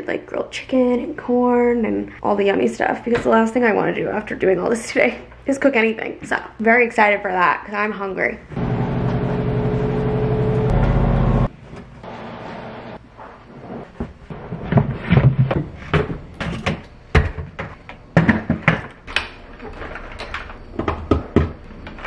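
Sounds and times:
steady mechanical hum: 0:08.4 - 0:13.0.

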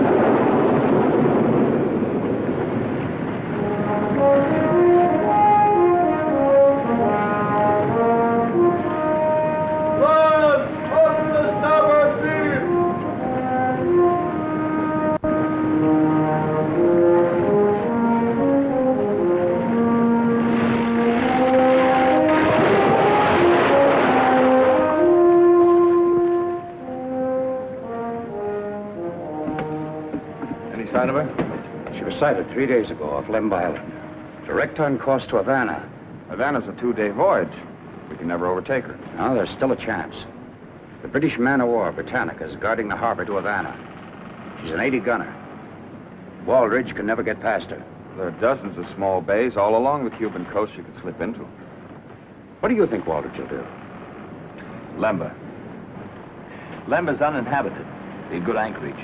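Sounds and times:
rushing wind and sea noise: 0:00.0 - 0:59.0
orchestral music with brass melody: 0:03.0 - 0:38.0.

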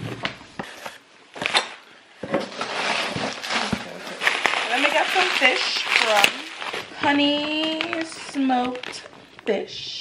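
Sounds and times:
plastic wrapping rustling: 0:00.0 - 0:10.0.

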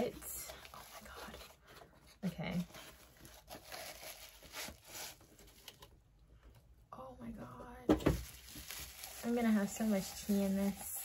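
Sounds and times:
bubble wrap crinkling: 0:00.0 - 0:01.6, 0:02.2 - 0:05.9, 0:08.0 - 0:11.0.

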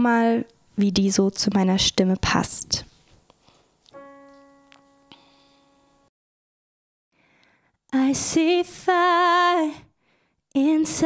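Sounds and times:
digital piano note: 0:03.9 - 0:06.1.

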